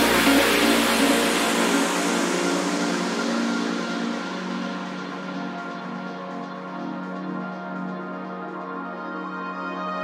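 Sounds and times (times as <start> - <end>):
deep bass: 0.0 - 10.0
sustained synth chords: 0.0 - 10.0.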